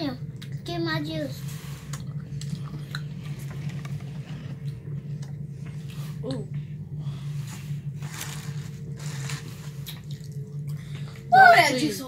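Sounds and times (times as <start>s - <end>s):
low hum: 0.0s - 12.0s
chewing sounds: 1.9s - 3.3s, 8.1s - 11.3s
slurping through a straw: 7.5s - 10.3s.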